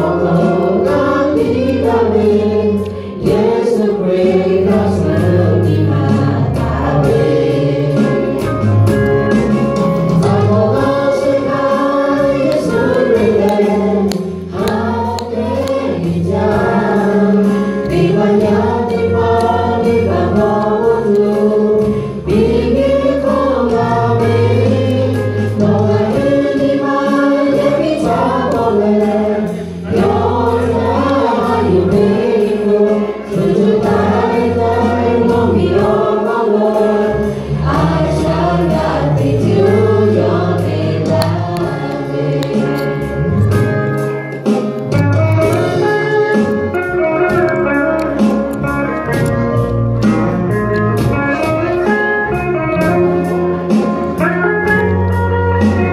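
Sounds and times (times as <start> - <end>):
women singing in harmony: 0.0 - 8.4, 10.2 - 42.9
live band with bass line: 0.0 - 55.9.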